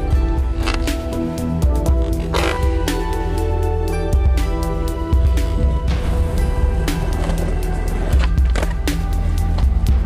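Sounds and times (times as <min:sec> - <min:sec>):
background music with bass line: 0:00.0 - 0:10.0
skateboard rolling on concrete: 0:00.0 - 0:10.0.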